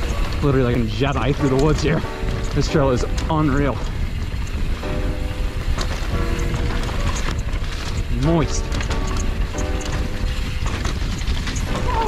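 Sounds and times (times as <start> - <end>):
mountain bike rattling on dirt trail: 0.0 - 12.0
wind rushing on microphone: 0.0 - 12.0.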